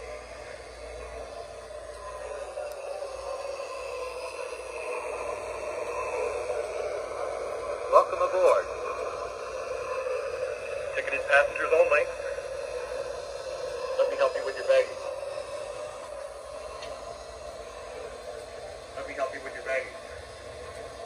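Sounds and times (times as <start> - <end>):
muffled voice chatter: 0.0 - 21.0
steady background hiss: 0.0 - 21.0.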